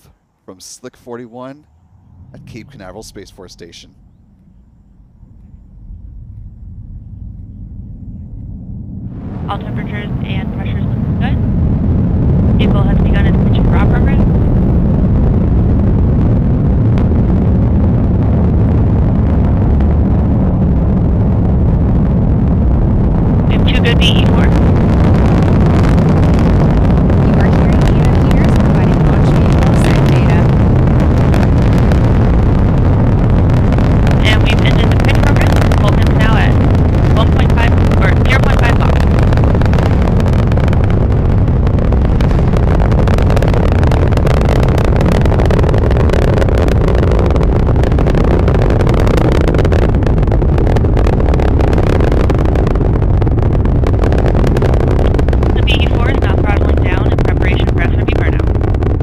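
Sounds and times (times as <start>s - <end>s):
rocket engines roaring: 0.0s - 59.0s.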